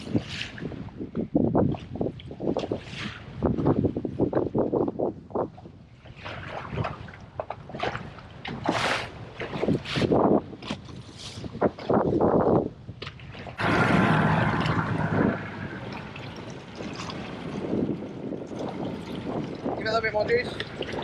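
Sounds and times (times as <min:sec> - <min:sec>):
wind buffeting microphone: 0:00.0 - 0:21.0
water splashing against boat hull: 0:06.0 - 0:12.0, 0:12.9 - 0:21.0
low engine hum: 0:13.6 - 0:19.8.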